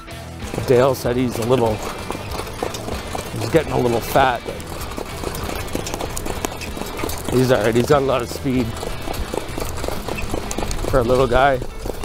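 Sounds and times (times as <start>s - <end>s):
horse hoofbeats on dirt: 0.0s - 12.0s.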